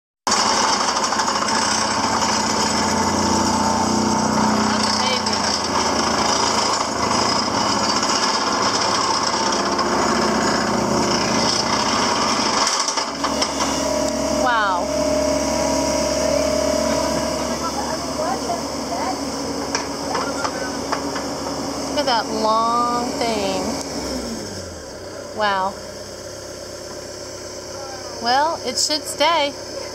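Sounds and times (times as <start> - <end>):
vibratory pile hammer: 0.3 - 24.4
excavator engine hum: 0.3 - 29.9.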